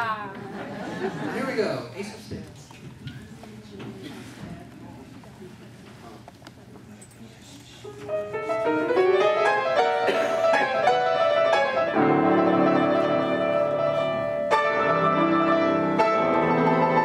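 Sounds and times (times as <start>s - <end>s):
ragtime piano duet: 8.1s - 17.0s.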